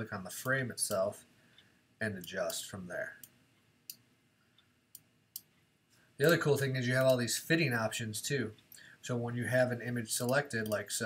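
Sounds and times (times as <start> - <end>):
person speaking: 0.0 - 1.3, 2.0 - 3.4, 6.2 - 11.0.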